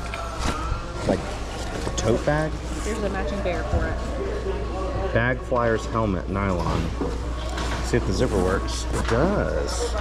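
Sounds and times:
faint voices: 0.0 - 10.0
store hum: 0.0 - 10.0.

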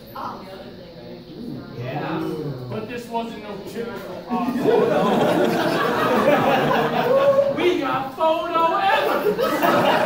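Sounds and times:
audience chatter: 0.0 - 10.0
audience laughter: 4.3 - 7.8, 9.0 - 10.0.

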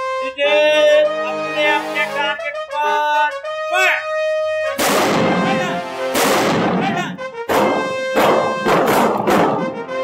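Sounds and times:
background music: 0.0 - 10.0
rifle shots ringing: 4.8 - 6.9, 7.5 - 9.7.

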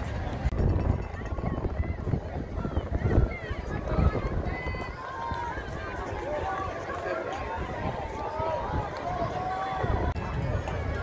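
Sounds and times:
chatter of many voices: 0.0 - 11.0.

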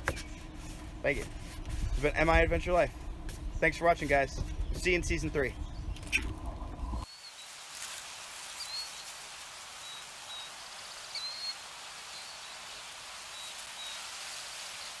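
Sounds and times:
steady hiss: 7.0 - 15.0.

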